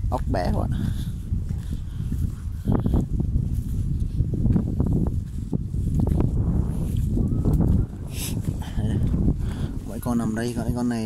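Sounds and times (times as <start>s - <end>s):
rumble on microphone: 0.0s - 11.0s
footsteps on muddy ground: 0.6s - 9.3s.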